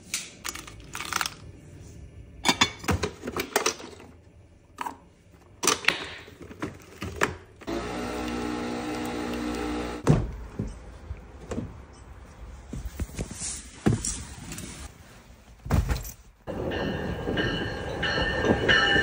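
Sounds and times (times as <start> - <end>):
coffee machine humming: 7.6 - 10.0.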